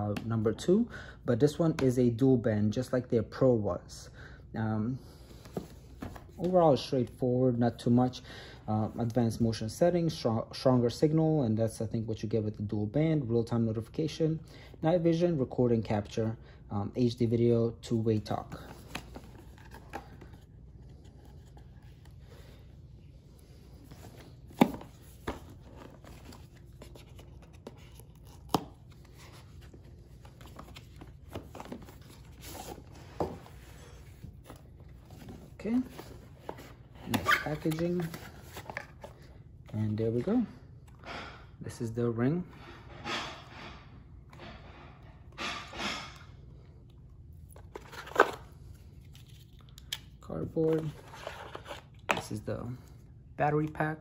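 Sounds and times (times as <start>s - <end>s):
cardboard packaging rustling: 18.2s - 22.2s, 23.4s - 39.3s, 47.6s - 49.6s.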